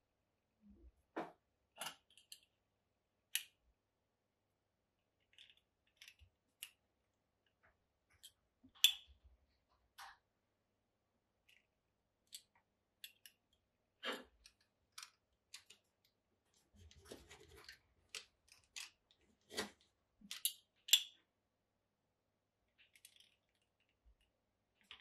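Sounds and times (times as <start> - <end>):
soft rubbing and handling: 15.5 - 20.0.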